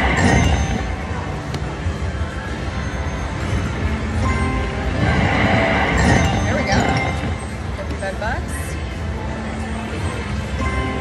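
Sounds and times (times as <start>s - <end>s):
slot machine win chiming: 0.0s - 1.1s, 2.8s - 7.5s.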